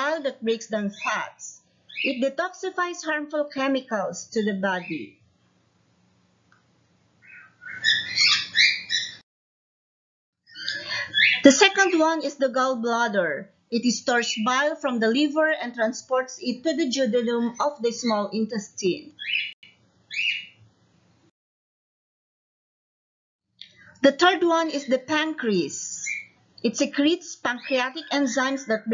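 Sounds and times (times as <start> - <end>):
high-pitched animal chirps: 7.2 - 9.2.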